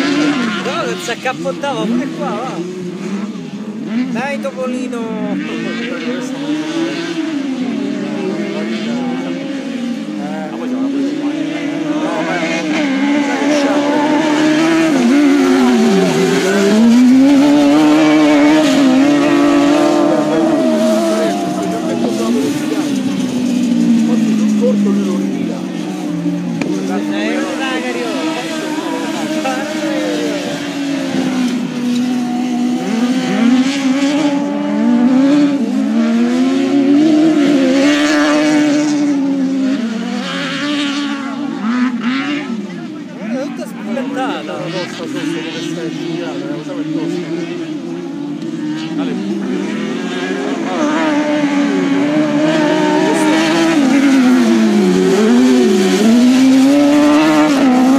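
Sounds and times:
race car engines accelerating: 0.0 - 57.9.

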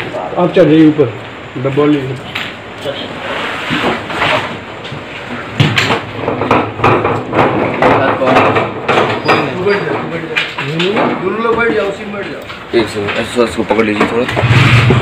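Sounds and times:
handling knocks and bumps: 3.8 - 15.0.

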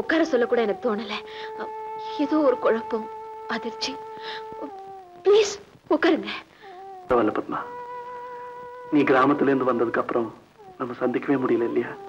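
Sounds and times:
breathy voice sounds: 1.0 - 2.2, 4.0 - 5.0, 6.3 - 7.7.

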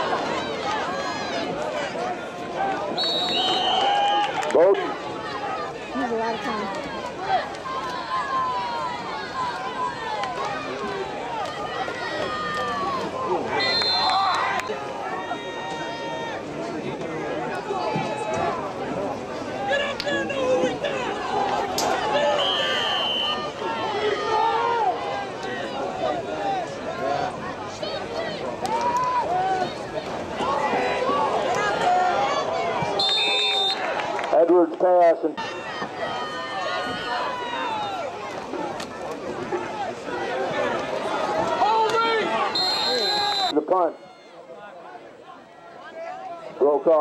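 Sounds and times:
spectators chatting and calling: 0.0 - 47.0
high whistle blasts: 3.0 - 4.2, 13.6 - 14.4, 22.4 - 23.4, 33.0 - 33.8, 42.5 - 43.6.

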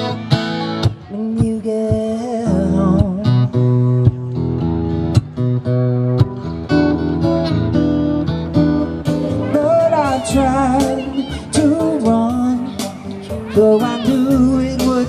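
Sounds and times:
strummed acoustic guitar: 0.0 - 15.0.

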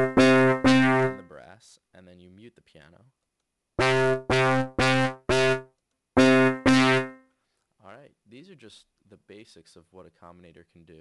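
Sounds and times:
software instrument notes: 0.0 - 1.4, 3.8 - 7.2.

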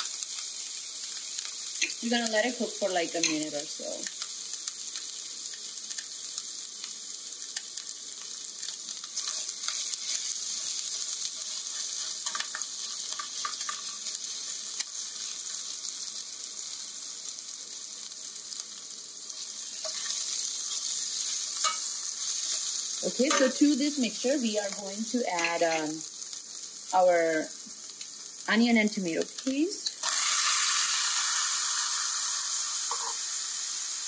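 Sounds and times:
spices sizzling in hot oil: 0.0 - 34.0
metal spatula scraping pan: 21.5 - 23.6, 32.9 - 33.2.

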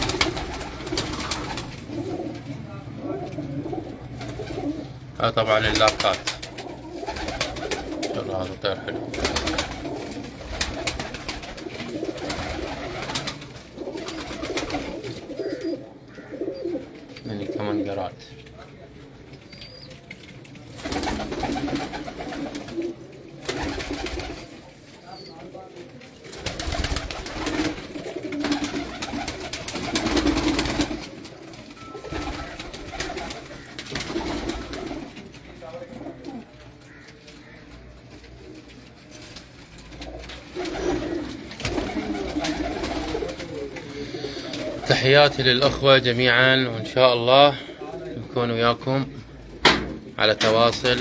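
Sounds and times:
pigeons cooing: 0.0 - 18.1, 20.8 - 25.6, 26.3 - 39.0, 39.9 - 51.0.

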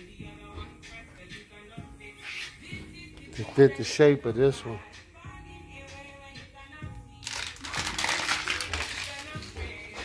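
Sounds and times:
faint background music: 0.0 - 10.0
loud rustling and crinkling: 7.2 - 9.5.

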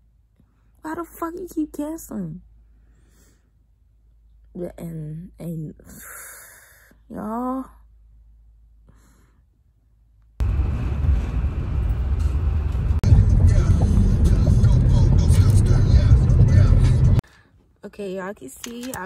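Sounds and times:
low rumbling inside car: 10.4 - 17.2.

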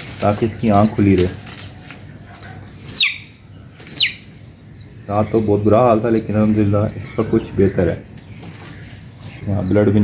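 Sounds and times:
chick peeping: 0.4 - 10.0.

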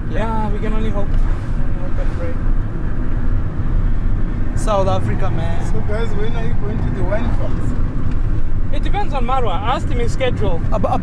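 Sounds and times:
car rumbling inside cabin: 0.0 - 11.0.

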